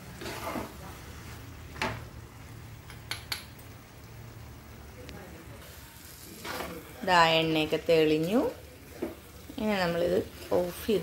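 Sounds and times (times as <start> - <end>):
spoon scraping in pot: 0.1 - 0.8.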